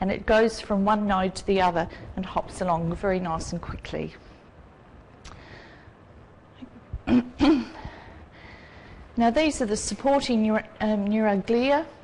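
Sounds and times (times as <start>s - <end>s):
person clearing throat: 7.0s - 7.8s.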